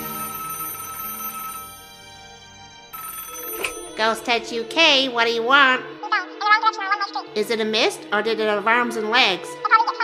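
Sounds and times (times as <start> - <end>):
telephone ringing: 0.0 - 6.4.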